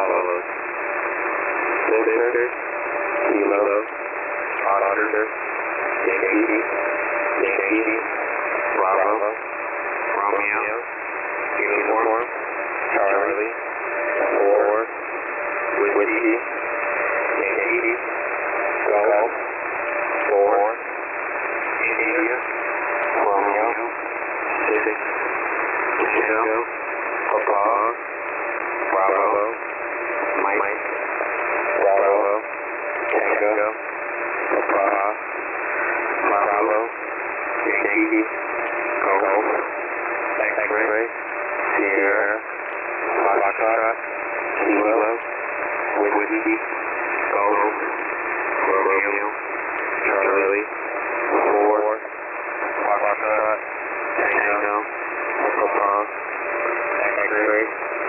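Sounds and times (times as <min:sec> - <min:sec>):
static hiss: 0:00.0 - 0:58.0
thin radio voice reading letters: 0:03.2 - 0:03.9, 0:04.5 - 0:15.0, 0:15.6 - 0:20.8, 0:21.6 - 0:28.0, 0:28.7 - 0:33.8, 0:34.4 - 0:58.0.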